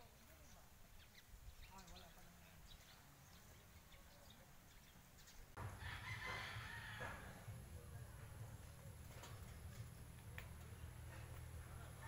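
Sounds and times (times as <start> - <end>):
distant rooster crowing: 5.6 - 7.6.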